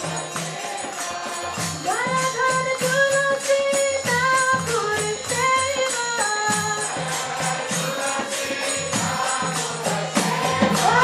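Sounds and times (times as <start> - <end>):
jingling hand percussion: 0.0 - 11.0.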